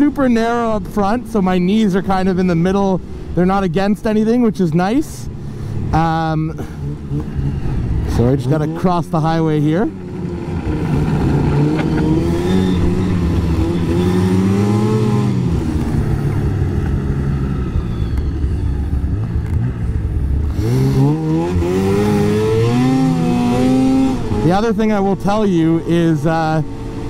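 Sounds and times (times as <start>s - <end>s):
snowmobile engine: 4.6s - 27.0s.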